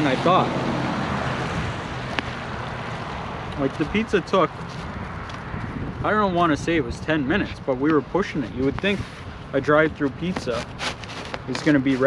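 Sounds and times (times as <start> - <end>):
traffic on wet pavement: 0.0 - 12.0
wind: 0.0 - 12.0.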